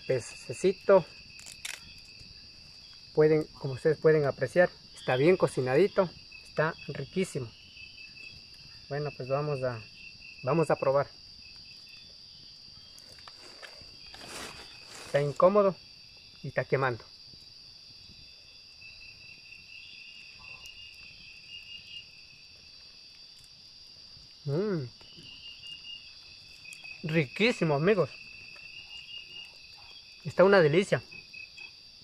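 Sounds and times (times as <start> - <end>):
insects chirping: 0.0 - 32.0.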